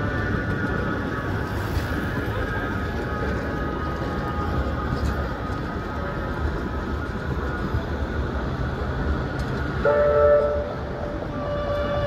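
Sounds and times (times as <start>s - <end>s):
tram rumbling: 0.0s - 12.0s.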